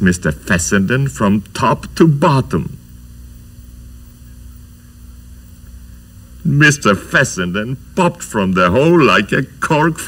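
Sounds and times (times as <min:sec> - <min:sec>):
faint hiss: 0:00.0 - 0:10.0
low electrical hum: 0:00.0 - 0:10.0.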